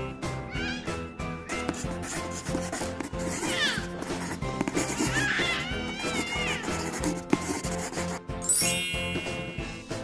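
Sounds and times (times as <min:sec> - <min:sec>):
background music with steady beat: 0:00.0 - 0:10.0
crayon scribbling on paper: 0:01.5 - 0:08.3.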